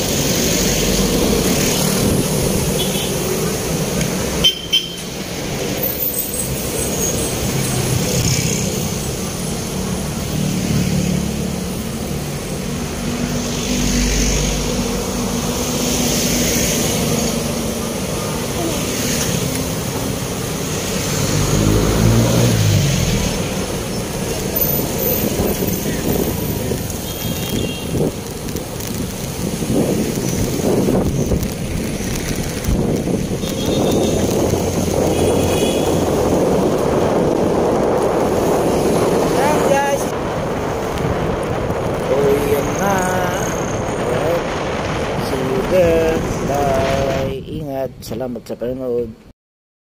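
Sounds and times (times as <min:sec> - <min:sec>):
bus engine alongside: 0:00.0 - 0:47.5
street traffic: 0:00.0 - 0:49.3
low engine note rising and falling: 0:20.8 - 0:23.8.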